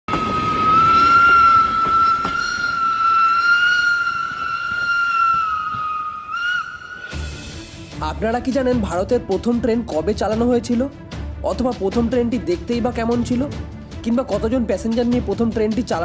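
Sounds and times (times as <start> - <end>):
steam locomotive whistle: 0.1 - 7.7.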